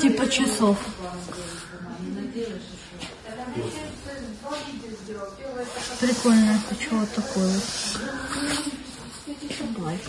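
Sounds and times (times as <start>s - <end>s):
soft indistinct talking: 0.0s - 10.0s.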